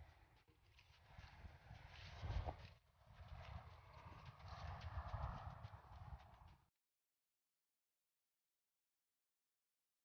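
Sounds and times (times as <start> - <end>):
wind rumbling on microphone: 1.1 - 6.6.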